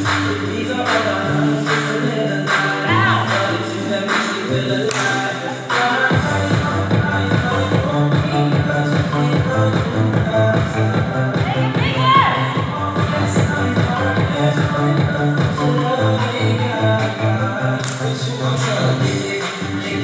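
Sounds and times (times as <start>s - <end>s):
dance music: 0.0s - 20.0s.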